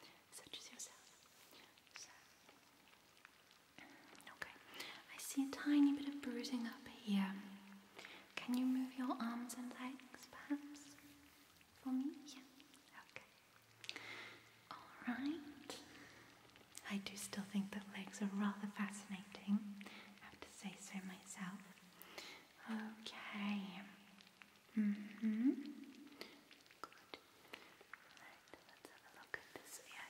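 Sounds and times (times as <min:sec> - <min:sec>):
woman whispering: 0:00.0 - 0:02.7, 0:03.8 - 0:13.4, 0:14.7 - 0:24.1, 0:24.7 - 0:30.0
low humming mm sounds: 0:03.7 - 0:30.0.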